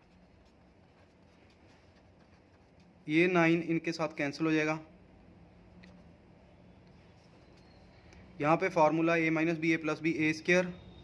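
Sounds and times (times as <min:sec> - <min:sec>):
pen scratching on paper: 0:00.0 - 0:03.4.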